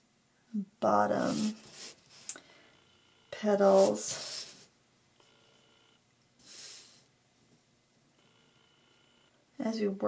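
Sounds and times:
faint steady tones: 1.1 - 10.0.

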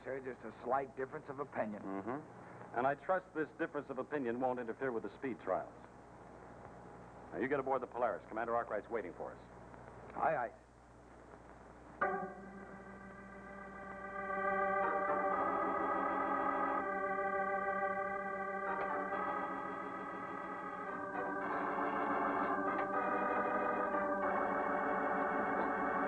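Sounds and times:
organ chords: 11.7 - 26.0.

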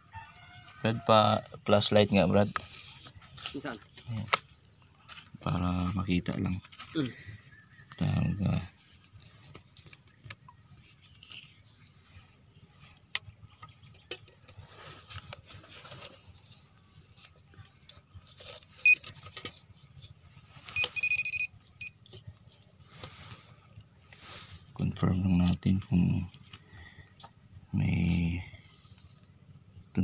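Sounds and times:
metal detector beeping: 18.8 - 19.1, 20.7 - 22.0.

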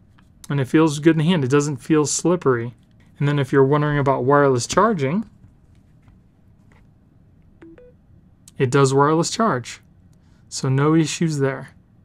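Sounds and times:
two-tone electronic beeps: 7.6 - 8.0.

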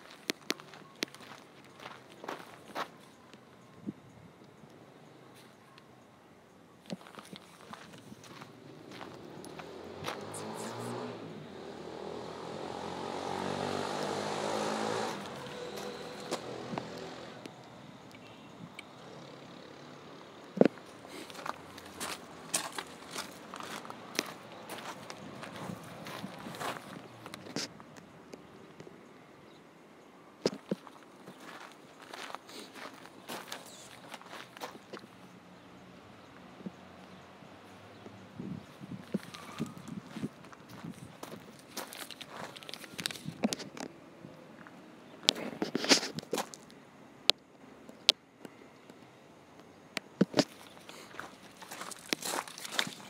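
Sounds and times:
footsteps on gravel: 0.0 - 3.1, 6.9 - 11.0, 20.6 - 27.7, 30.5 - 35.1, 39.1 - 43.4, 45.4 - 46.7, 50.2 - 53.0
engine drone: 8.3 - 27.6.

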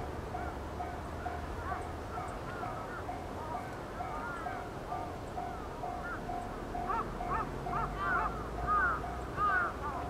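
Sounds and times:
diesel locomotive engine drone: 0.0 - 10.0
birds calling: 0.4 - 10.0.

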